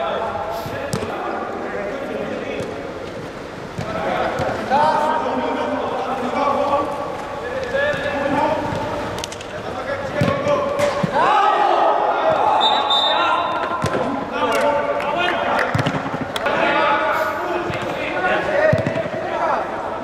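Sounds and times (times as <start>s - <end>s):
players shouting: 9.8s - 20.0s.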